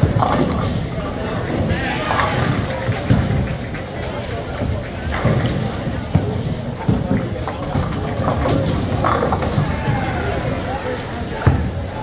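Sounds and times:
steady background noise: 0.0s - 12.0s
indistinct voices talking: 1.2s - 3.1s, 7.2s - 12.0s.

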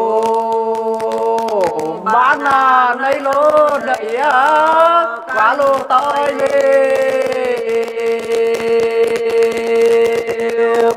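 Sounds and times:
person singing a long note: 0.0s - 10.9s
rapid ticking: 0.0s - 10.9s.

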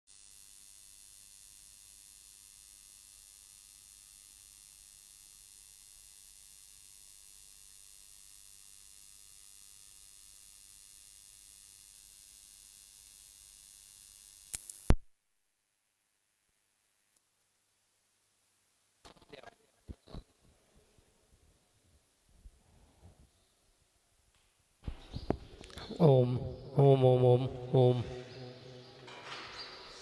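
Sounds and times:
electronic hiss of audio line: 0.1s - 15.0s.

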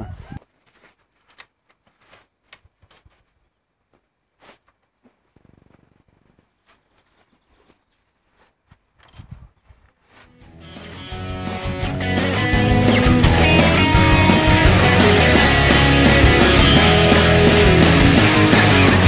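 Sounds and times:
shuffling: 0.0s - 11.2s.

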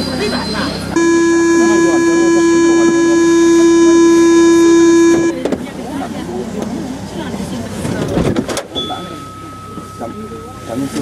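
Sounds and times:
train cab noise: 0.0s - 11.0s
voices: 0.0s - 11.0s
train warning buzzer: 1.0s - 5.4s.

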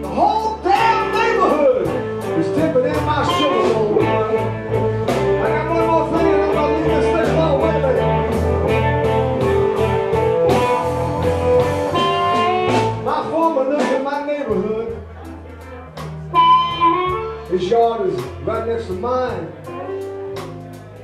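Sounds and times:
drums: 0.0s - 21.0s
electric guitars: 0.0s - 21.0s
live blues band playing: 0.0s - 21.0s.

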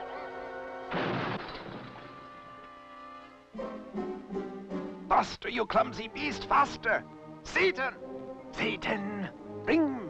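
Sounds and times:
loud crash: 0.9s - 2.5s
orchestral cartoon score: 2.4s - 10.0s.

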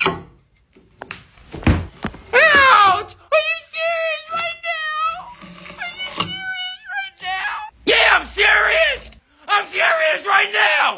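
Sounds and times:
man yelling: 2.3s - 5.2s, 5.9s - 10.9s.

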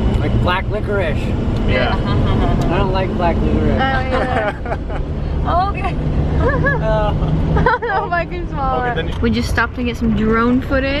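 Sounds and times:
engine and road rumble: 0.0s - 11.0s
voices and laughter: 1.6s - 9.2s.

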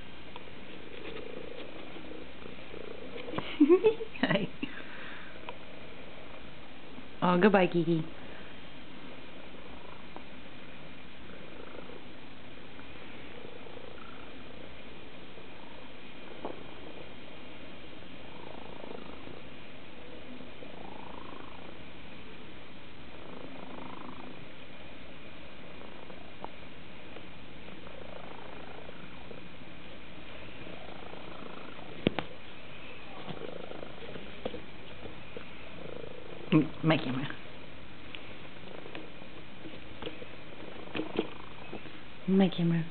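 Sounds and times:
cat purring: 0.0s - 42.9s.

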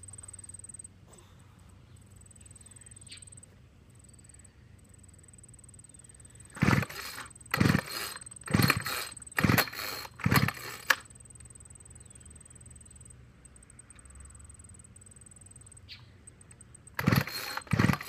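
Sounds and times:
recoil starter cranking whir: 6.5s - 11.1s, 16.9s - 18.0s
trimmer click: 6.6s - 11.5s, 16.5s - 18.0s.

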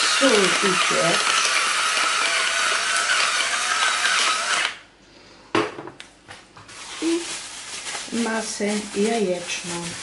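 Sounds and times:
electric pepper mill grinding: 0.0s - 4.8s.

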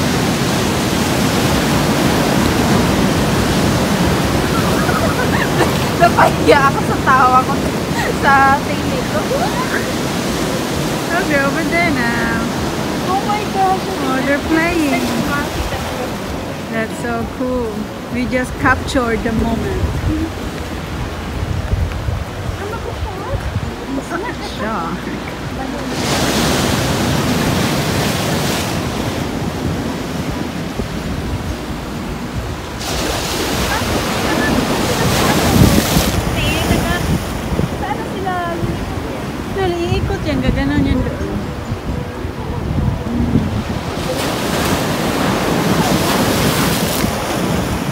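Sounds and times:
ocean surf breaking: 0.0s - 47.9s
people talking: 4.4s - 20.4s, 22.5s - 26.8s, 33.6s - 47.2s.

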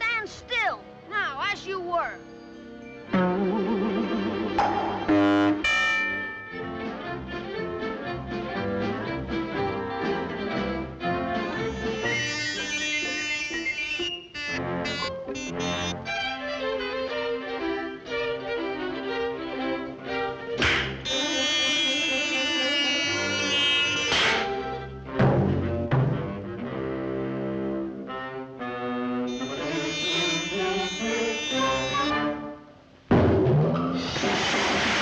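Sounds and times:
orchestral cartoon music: 2.1s - 34.2s.

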